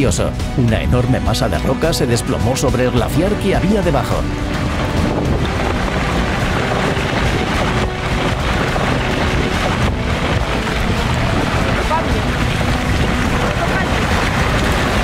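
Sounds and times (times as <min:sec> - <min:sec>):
rockfall rumble: 0:00.0 - 0:15.0
wind buffeting microphone: 0:00.0 - 0:15.0.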